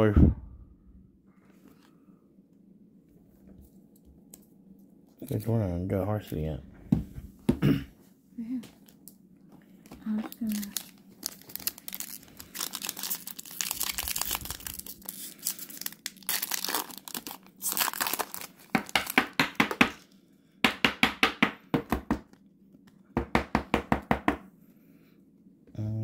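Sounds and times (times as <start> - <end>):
wrapper crinkling and tearing: 10.0 - 19.7.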